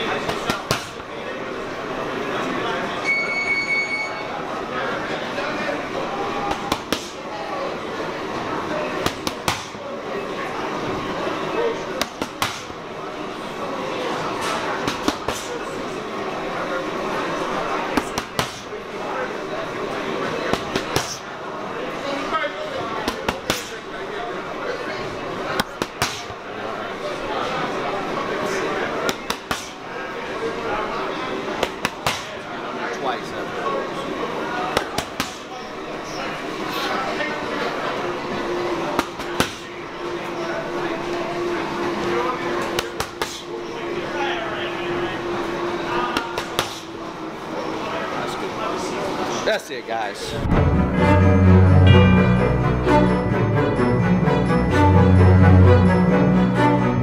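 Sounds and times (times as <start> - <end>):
background chatter: 0.0 - 57.0
boxing gloves smacking mitts: 0.2 - 1.0, 6.5 - 7.2, 9.0 - 9.8, 12.0 - 12.8, 14.5 - 15.5, 18.0 - 18.7, 20.5 - 21.2, 23.0 - 23.8, 25.6 - 26.4, 29.0 - 29.8, 31.6 - 32.4, 34.7 - 35.5, 39.0 - 39.7, 42.7 - 43.4, 46.2 - 46.9.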